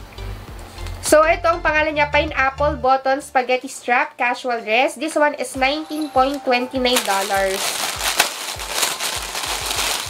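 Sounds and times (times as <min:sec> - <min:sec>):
plastic packaging crinkling: 0:06.8 - 0:10.0.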